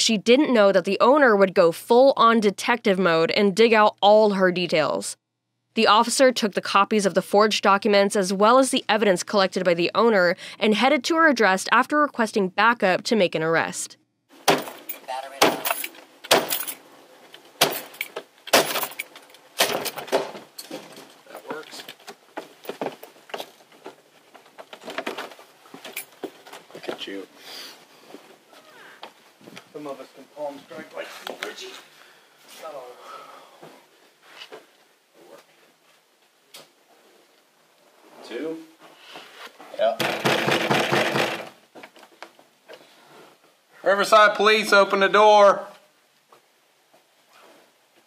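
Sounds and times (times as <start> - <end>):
door rattling: 40.0 - 41.6.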